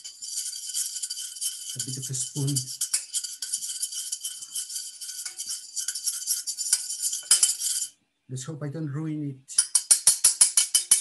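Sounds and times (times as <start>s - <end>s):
spoon scraping saucepan: 0.0s - 8.0s.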